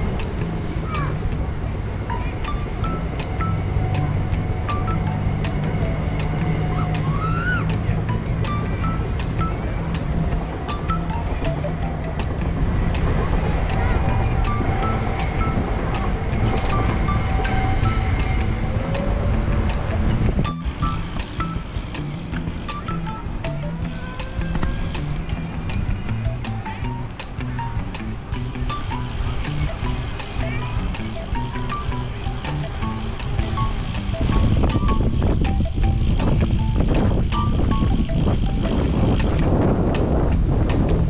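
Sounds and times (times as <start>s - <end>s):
music with steady beat and bass: 0.0s - 41.0s.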